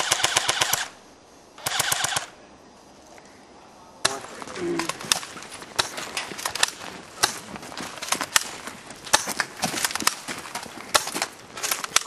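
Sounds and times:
airsoft guns firing: 0:00.0 - 0:00.9, 0:01.6 - 0:02.3, 0:04.8 - 0:10.3, 0:10.9 - 0:12.0.

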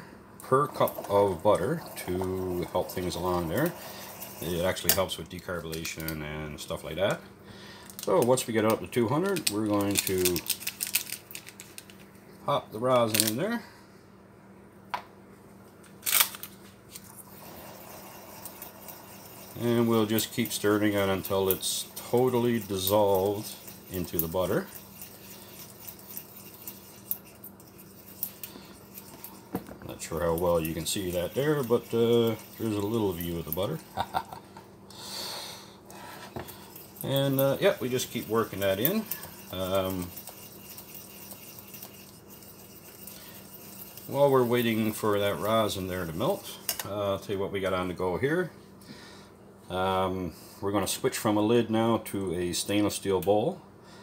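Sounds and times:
low steady hum: 0:00.0 - 0:54.0
soft stirring: 0:00.4 - 0:07.1, 0:16.9 - 0:34.4, 0:35.9 - 0:48.2
utensil scraping saucepan: 0:00.7 - 0:05.1, 0:17.3 - 0:33.8, 0:36.0 - 0:46.9.

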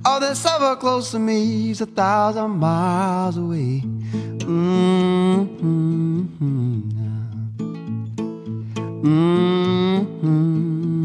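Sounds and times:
acoustic guitar: 0:00.0 - 0:11.0
man humming: 0:04.4 - 0:07.5, 0:09.0 - 0:11.0.

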